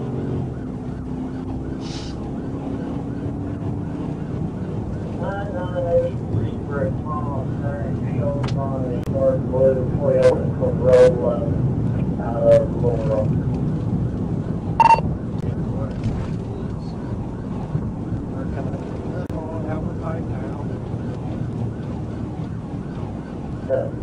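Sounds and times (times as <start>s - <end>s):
car engine tyre and wind noise: 0.0s - 24.0s
short tone: 14.8s - 15.0s.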